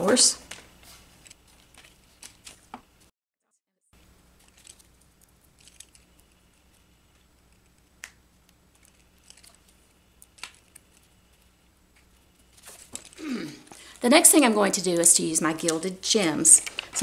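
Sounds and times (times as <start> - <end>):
low steady hum: 4.0 - 17.0.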